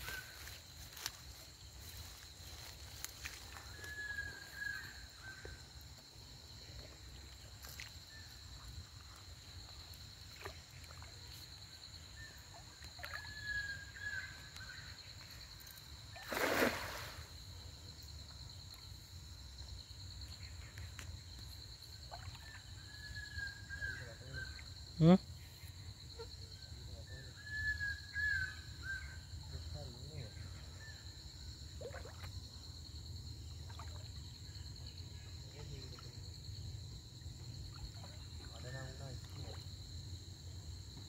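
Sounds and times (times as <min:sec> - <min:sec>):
high insect drone: 0:00.0 - 0:41.0
splash in water: 0:16.1 - 0:17.4, 0:31.8 - 0:32.3, 0:33.6 - 0:34.2, 0:39.2 - 0:39.7.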